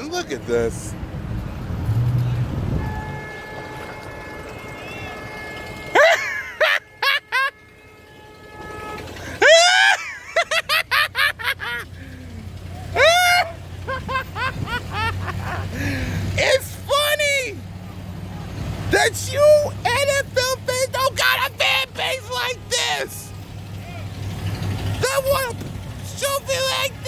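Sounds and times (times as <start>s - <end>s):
traffic noise: 0.0s - 27.0s
vehicle horn: 2.6s - 9.6s, 20.8s - 23.8s
people shouting: 9.4s - 10.1s, 12.8s - 15.1s, 19.0s - 24.2s.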